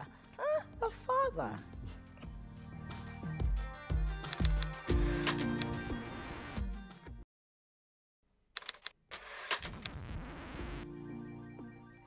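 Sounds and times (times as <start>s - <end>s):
tv theme music: 0.0s - 7.2s, 10.0s - 12.0s
sharp clicks: 4.2s - 5.7s, 8.6s - 10.0s.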